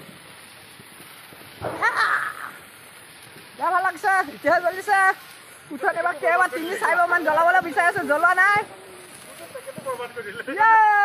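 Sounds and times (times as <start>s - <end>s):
low steady hiss: 0.0s - 11.0s
man yelling high-pitched: 10.5s - 11.0s.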